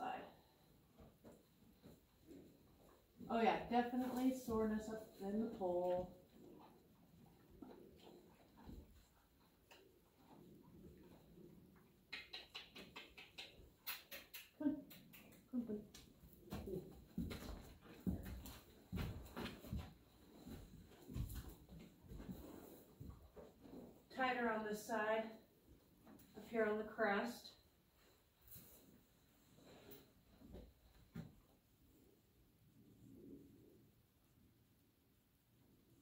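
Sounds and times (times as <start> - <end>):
woman speaking: 0.0 - 0.3, 3.3 - 6.1, 24.1 - 25.4, 26.4 - 27.5.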